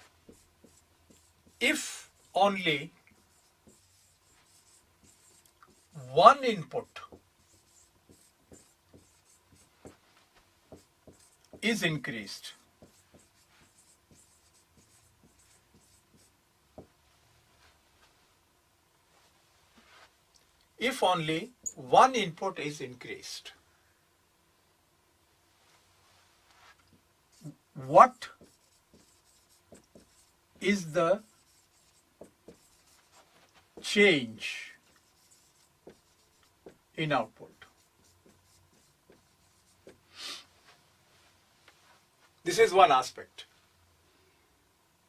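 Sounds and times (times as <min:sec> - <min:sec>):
marker pen squeaking on whiteboard: 0:00.2 - 0:02.3, 0:03.2 - 0:06.0, 0:06.8 - 0:10.0, 0:12.8 - 0:16.3, 0:21.6 - 0:21.8, 0:27.3 - 0:33.9, 0:34.8 - 0:36.8, 0:37.5 - 0:40.0.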